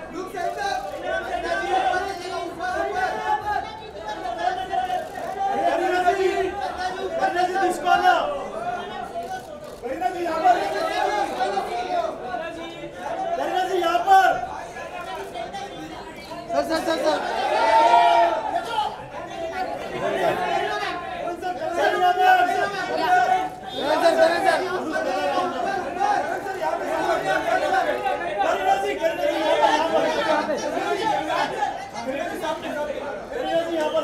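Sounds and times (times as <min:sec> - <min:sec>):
crowd hubbub in large hall: 0:00.0 - 0:34.0.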